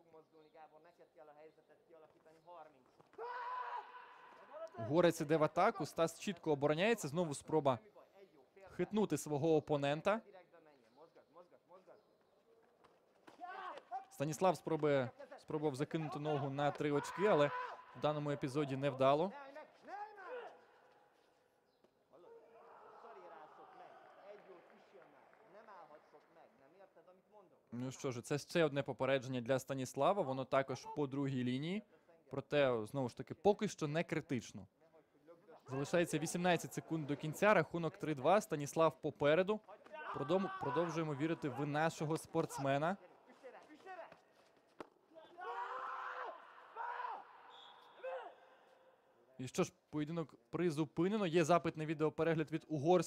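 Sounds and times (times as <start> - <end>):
men shouting: 16.0 - 18.0, 40.0 - 41.8.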